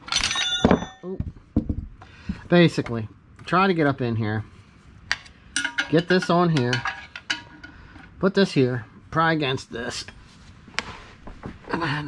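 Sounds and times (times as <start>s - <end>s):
wrench clanking against metal: 0.0s - 1.1s, 5.1s - 7.8s.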